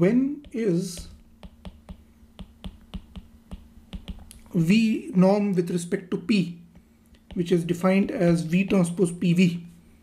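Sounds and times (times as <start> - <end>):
stylus clicking on tablet screen: 0.4 - 4.4.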